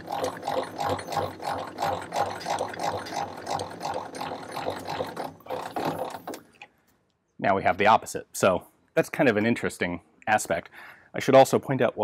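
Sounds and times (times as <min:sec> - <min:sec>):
handwheel cranking mechanism: 0:00.0 - 0:06.5.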